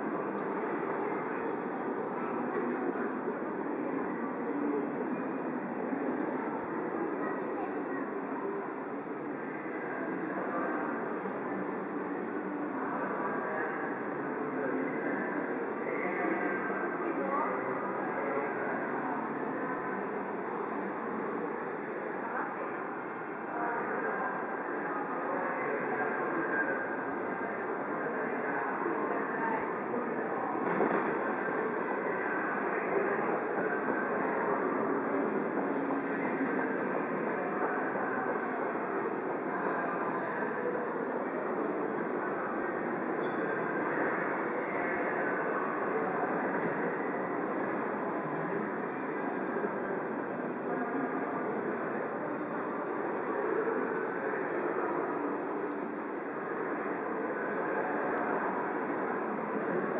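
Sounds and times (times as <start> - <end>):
crowd noise: 0.0 - 59.9.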